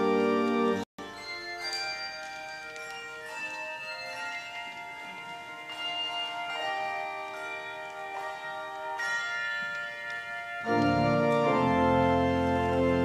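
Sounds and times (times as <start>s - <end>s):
handbell choir ringing chords: 0.0s - 13.0s.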